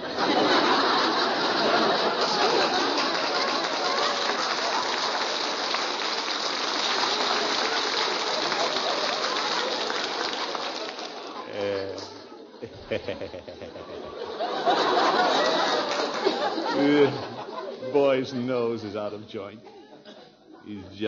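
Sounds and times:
audience laughing: 0:00.0 - 0:05.7, 0:06.4 - 0:18.5
audience applauding: 0:00.0 - 0:11.8, 0:14.3 - 0:17.0.

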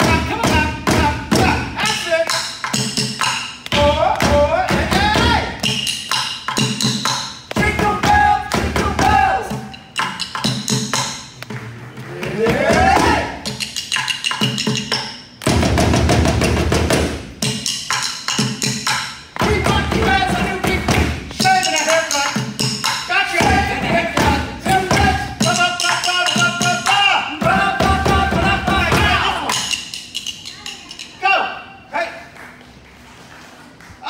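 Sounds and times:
pots and pans struck in rhythm: 0:00.0 - 0:31.4.

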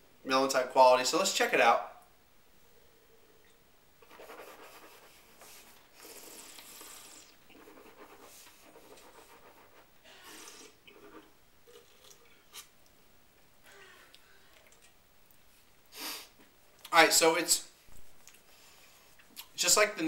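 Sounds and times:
breathy air draws through mouth: 0:05.4 - 0:07.5.

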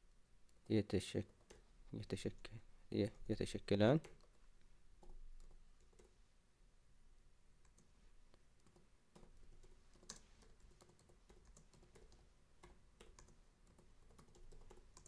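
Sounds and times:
computer keyboard typing: 0:01.2 - 0:01.7, 0:05.0 - 0:06.1, 0:08.6 - 0:15.0.

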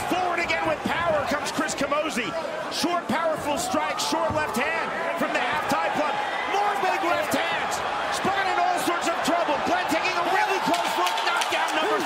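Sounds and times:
voices shouting and yelling: 0:00.0 - 0:12.0.

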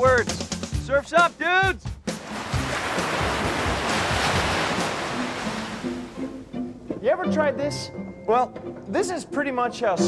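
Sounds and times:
background music: 0:00.0 - 0:10.0
ocean waves breaking: 0:02.1 - 0:06.6.

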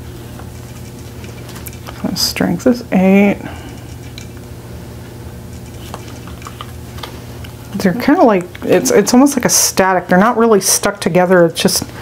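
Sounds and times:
air conditioner hum: 0:00.0 - 0:12.0.

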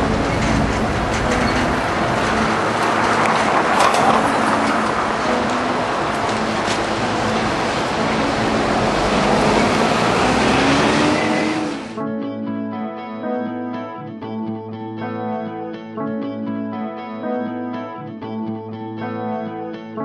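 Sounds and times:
city street traffic: 0:00.0 - 0:12.0
engine rising in pitch: 0:00.0 - 0:12.0.

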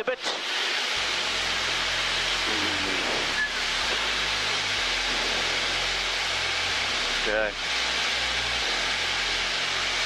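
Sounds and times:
plane engine and propeller drone: 0:00.2 - 0:09.4.

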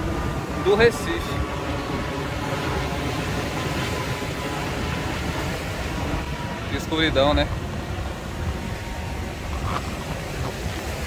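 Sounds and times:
jet airliner rumble: 0:00.0 - 0:11.0
wind: 0:00.0 - 0:11.0.

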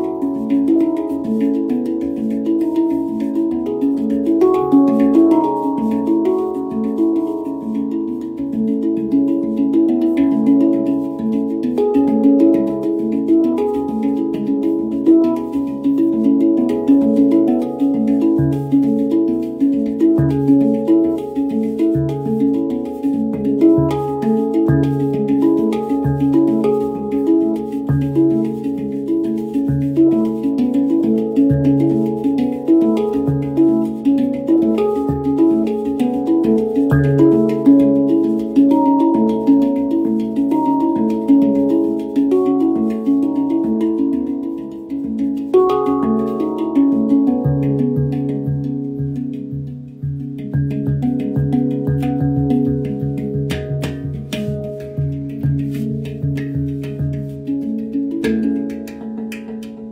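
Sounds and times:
handpan played with fingers: 0:00.0 - 0:59.9.

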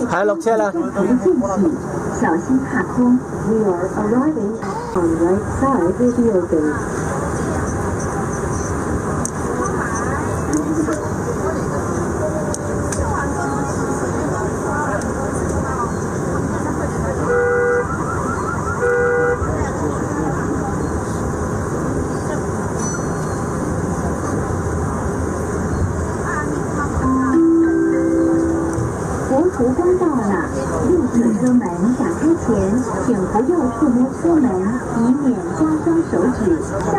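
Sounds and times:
train rumbling: 0:00.0 - 0:36.9.

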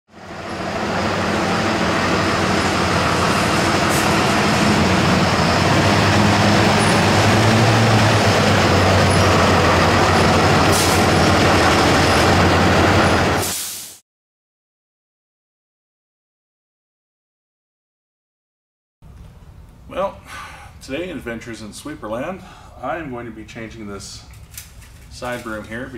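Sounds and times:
diesel engine running: 0:00.1 - 0:13.5.

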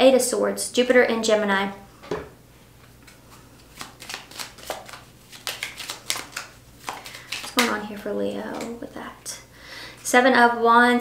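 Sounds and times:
cards being shuffled by hand: 0:03.1 - 0:08.8.

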